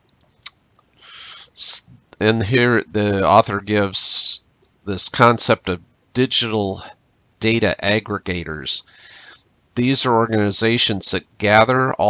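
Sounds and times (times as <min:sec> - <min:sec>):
soft breath in: 0:01.0 - 0:01.6, 0:08.9 - 0:09.4
person speaking: 0:01.1 - 0:12.0.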